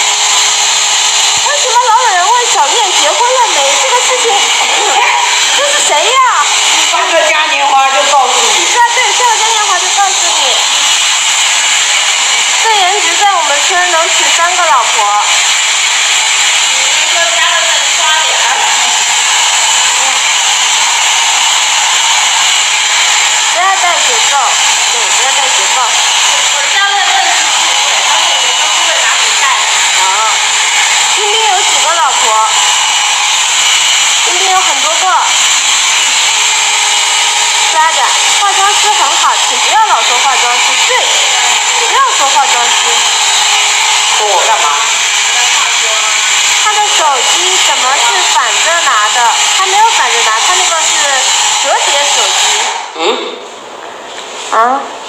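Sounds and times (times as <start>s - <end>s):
hair dryer running: 0.0s - 53.0s
voices talking: 1.4s - 15.6s, 23.2s - 33.2s, 37.6s - 53.5s.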